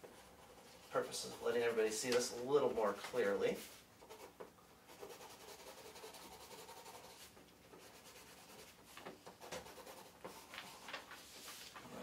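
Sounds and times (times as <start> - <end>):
marker pen rubbing on paper: 0.0 - 2.3, 3.6 - 10.9.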